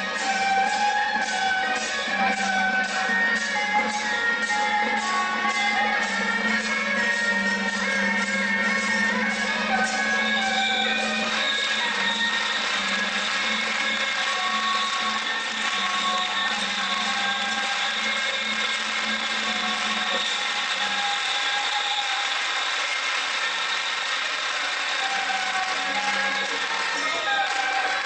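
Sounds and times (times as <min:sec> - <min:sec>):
reed horns playing gliding melody: 0:00.0 - 0:28.0.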